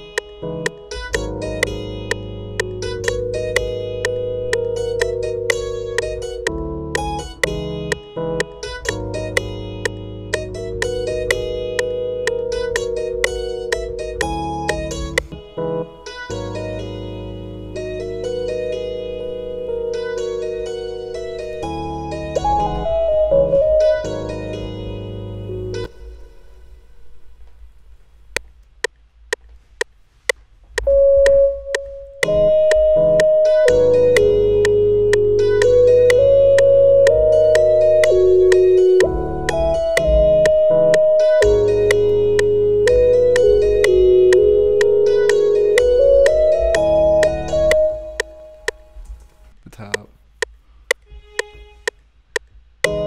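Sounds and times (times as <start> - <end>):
metronome clicks: 0.0 - 15.4, 28.3 - 49.3, 49.9 - 53.0
held keyboard note: 0.0 - 26.6, 30.8 - 50.0
synthesized lead guitar melody: 0.0 - 26.7, 30.9 - 49.1
electric piano chords: 0.0 - 26.8, 30.8 - 49.2
bass: 0.0 - 51.0, 52.6 - 53.0.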